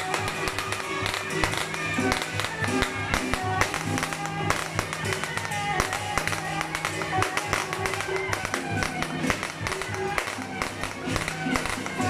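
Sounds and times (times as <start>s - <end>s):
percussion strikes: 0.0s - 12.0s.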